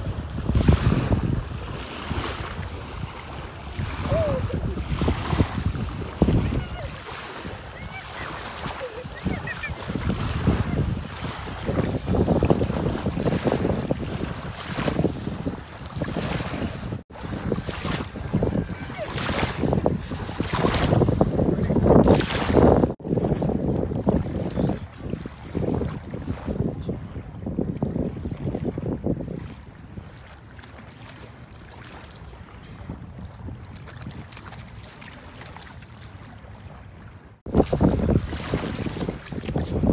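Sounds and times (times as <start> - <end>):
small waves washing at shore: 0.0 - 39.9
wind buffeting microphone: 0.0 - 39.9.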